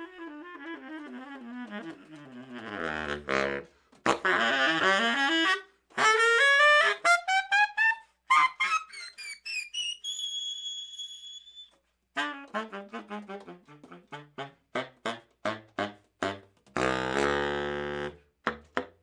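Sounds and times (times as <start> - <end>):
baritone saxophone free jazz: 0.0 - 9.8, 11.6 - 18.9.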